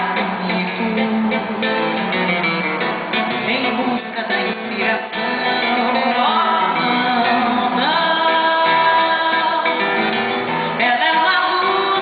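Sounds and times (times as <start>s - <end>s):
woman singing: 0.0s - 2.0s, 3.3s - 12.0s
acoustic guitar: 0.0s - 12.0s.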